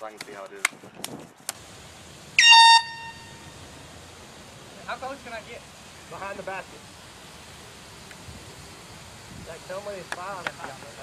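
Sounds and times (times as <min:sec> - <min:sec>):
air horn blast: 0:02.4 - 0:03.5.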